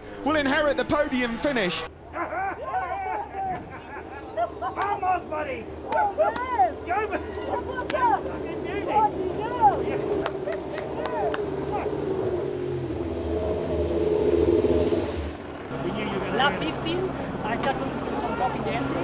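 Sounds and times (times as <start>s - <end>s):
people whooping and shouting: 1.6s - 12.0s
vehicle engine running: 6.8s - 19.0s.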